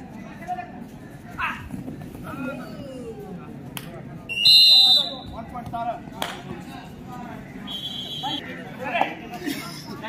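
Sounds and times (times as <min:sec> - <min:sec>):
referee's whistle blast: 0:04.3 - 0:05.3, 0:07.7 - 0:08.4.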